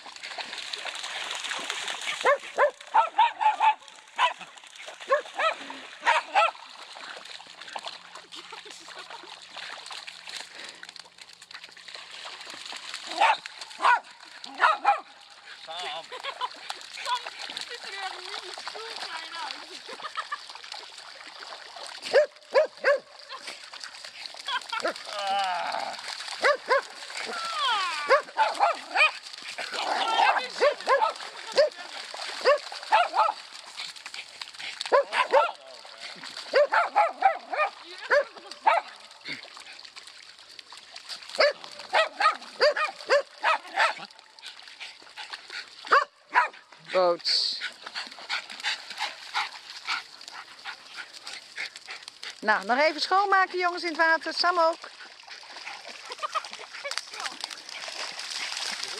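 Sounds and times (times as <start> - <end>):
water sloshing: 0.0 - 58.9
small dogs barking: 2.2 - 4.4, 5.0 - 6.6, 13.1 - 15.2, 22.1 - 23.1, 26.4 - 27.0, 28.0 - 31.8, 32.4 - 33.5, 34.8 - 35.7, 36.5 - 39.0, 41.4 - 44.1, 45.9 - 46.6.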